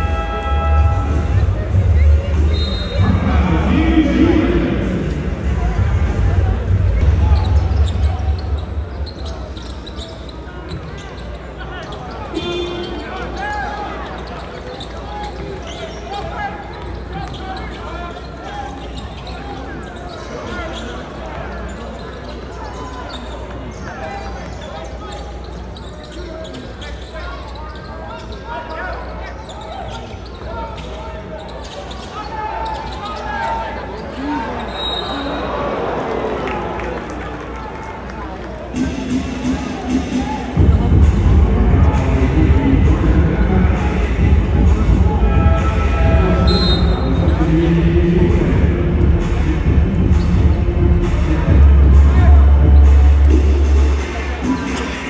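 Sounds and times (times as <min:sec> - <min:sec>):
loud deep bass music: 0:00.0 - 0:09.0, 0:38.8 - 0:55.0
crowd chatter: 0:00.0 - 0:55.0.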